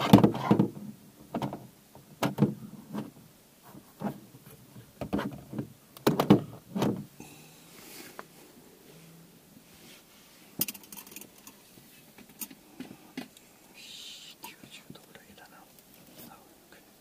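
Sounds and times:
soft hiss: 0.0 - 17.0.

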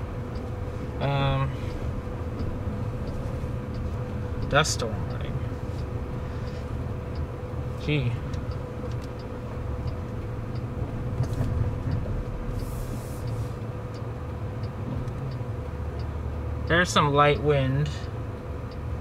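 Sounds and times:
faint steady hum: 0.0 - 19.0
road and tyre rumble in cabin: 0.0 - 19.0.

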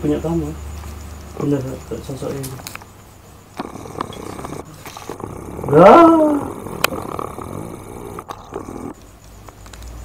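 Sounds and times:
rough low vocal noise: 3.5 - 9.1.

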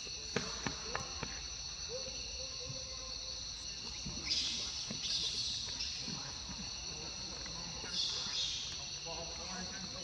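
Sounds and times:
insects buzzing: 0.0 - 10.0.

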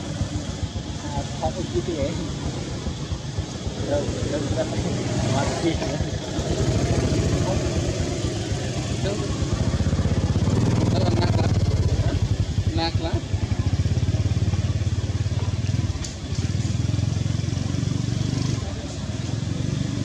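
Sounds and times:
small engine droning: 0.0 - 20.0.

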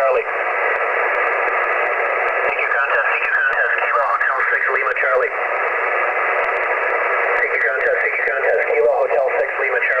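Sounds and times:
distorted radio voice: 0.0 - 0.4, 2.0 - 5.7, 6.5 - 10.0
radio static hiss: 0.0 - 10.0.

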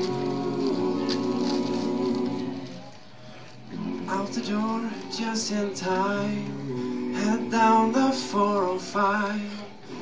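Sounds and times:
male vocal group singing a cappella: 0.0 - 2.9, 3.6 - 10.0.

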